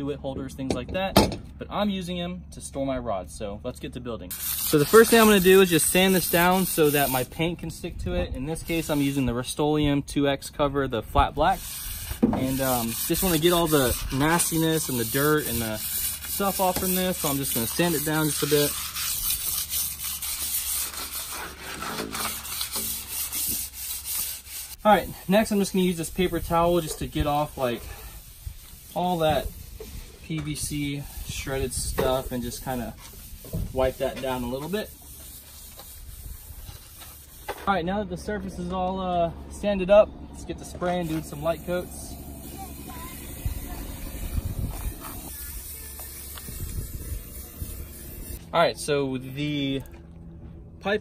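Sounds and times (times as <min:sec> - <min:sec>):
aerosol spray can hissing: 0:04.3 - 0:05.2, 0:42.5 - 0:48.4
sandpaper rubbing plastic pipe: 0:04.3 - 0:07.3, 0:08.6 - 0:09.3, 0:11.4 - 0:37.8, 0:42.5 - 0:48.4
wind buffeting microphone: 0:26.0 - 0:34.0, 0:43.1 - 0:48.4.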